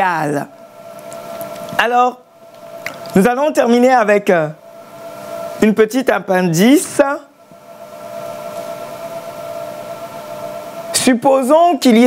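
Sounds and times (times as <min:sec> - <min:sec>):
person speaking: 0:01.6 - 0:02.2, 0:03.0 - 0:04.6, 0:05.6 - 0:07.3.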